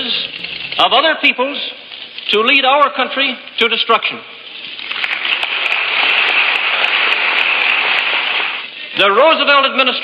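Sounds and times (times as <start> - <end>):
crowd applauding: 4.8 - 8.7.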